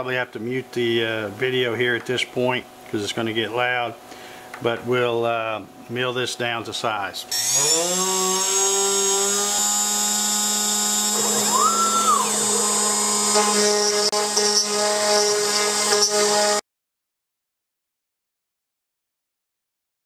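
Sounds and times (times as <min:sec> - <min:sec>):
router spindle whining: 0:07.3 - 0:16.6.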